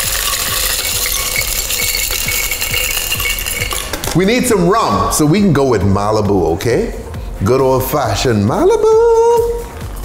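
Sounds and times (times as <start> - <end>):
ice rattling into glass jar: 0.0 - 4.2.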